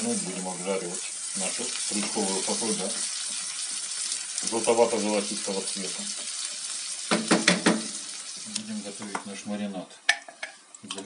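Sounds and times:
vegetables sizzling in hot oil: 0:00.0 - 0:09.6
spatula knocking on pan: 0:07.1 - 0:07.9.

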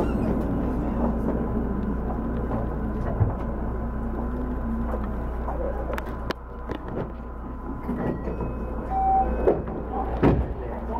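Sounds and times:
electric train hum: 0:00.0 - 0:10.9.

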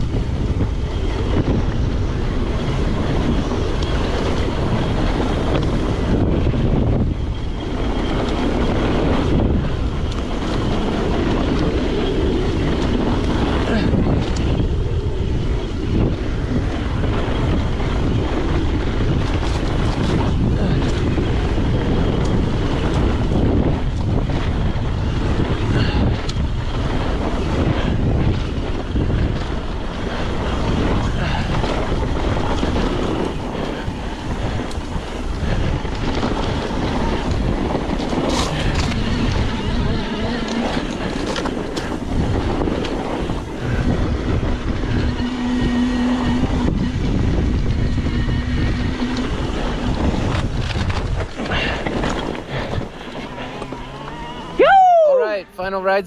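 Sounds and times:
bike tyres rumbling on dirt: 0:00.0 - 0:55.4
wind buffeting microphone: 0:00.0 - 0:56.0
steady humming tone: 0:38.5 - 0:55.6.

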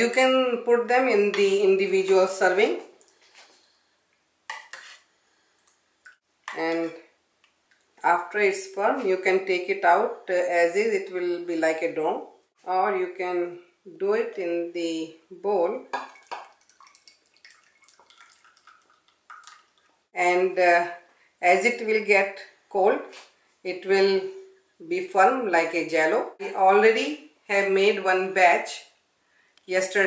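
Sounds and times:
liquid trickling and splashing: 0:16.0 - 0:20.1.

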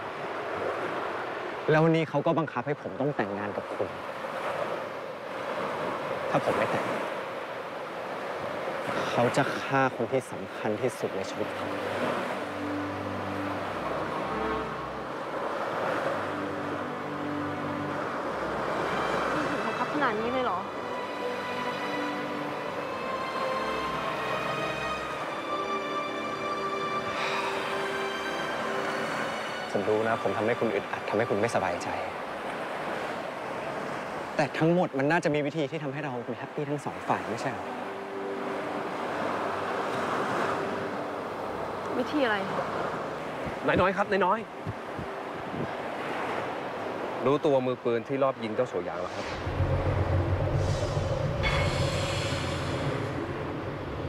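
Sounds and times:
ocean surf washing in: 0:00.0 - 0:54.0
wind: 0:00.0 - 0:54.0
soft low tones: 0:48.5 - 0:54.0.

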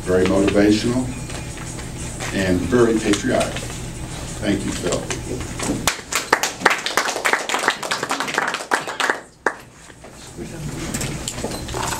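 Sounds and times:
audience applause: 0:05.8 - 0:09.6.

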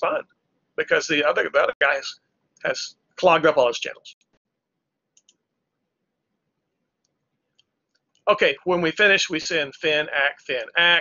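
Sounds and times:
faint quick clicks: 0:05.2 - 0:05.4.

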